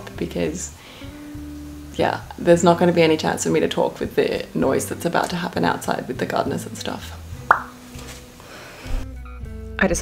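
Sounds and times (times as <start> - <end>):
short pop dropping in pitch: 7.5 - 7.8.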